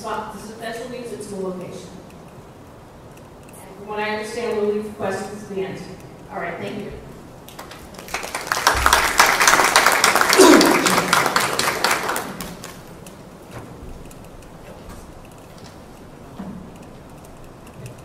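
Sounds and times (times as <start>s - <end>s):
audience applauding: 7.5s - 13.0s.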